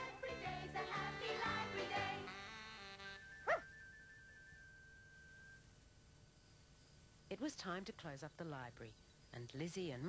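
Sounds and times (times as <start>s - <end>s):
dog bark: 3.4s - 3.7s.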